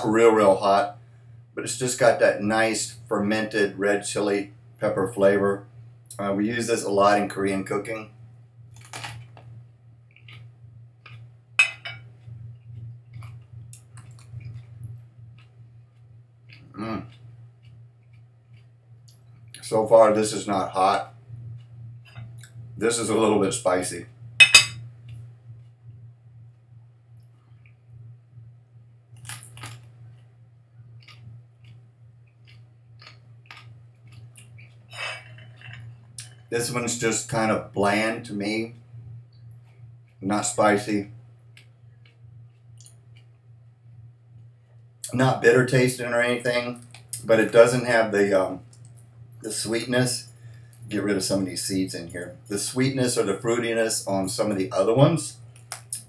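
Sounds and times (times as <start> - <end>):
steady low hum: 0.0 - 56.0
person chewing crunchy food: 8.7 - 19.6, 29.1 - 36.5
crunchy biting and chewing: 30.9 - 36.5.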